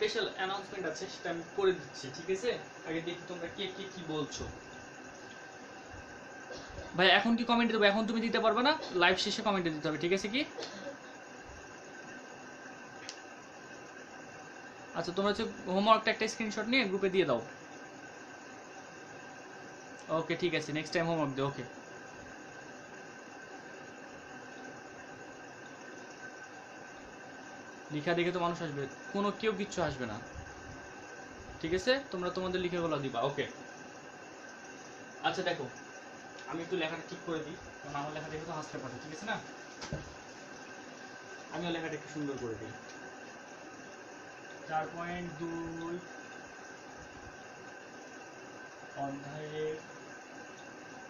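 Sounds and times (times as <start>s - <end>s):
faint high steady tone: 0.0s - 46.8s, 47.9s - 50.8s
faint high whine: 0.0s - 51.0s
low background hiss: 0.0s - 51.0s.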